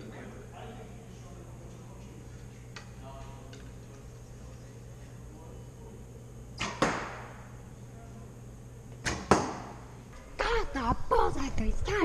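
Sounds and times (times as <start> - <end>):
arrow striking target: 6.6 - 7.4, 9.0 - 9.8.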